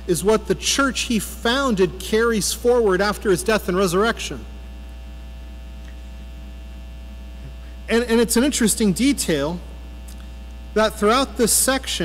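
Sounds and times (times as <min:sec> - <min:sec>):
man speaking: 0:00.0 - 0:04.5, 0:07.8 - 0:09.7, 0:10.7 - 0:12.0
low electrical hum: 0:00.0 - 0:12.0.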